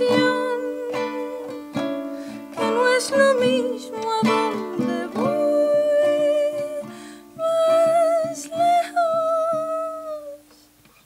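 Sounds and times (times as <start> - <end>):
woman singing with vibrato: 0.0 - 10.6
plucked guitar: 0.0 - 11.0.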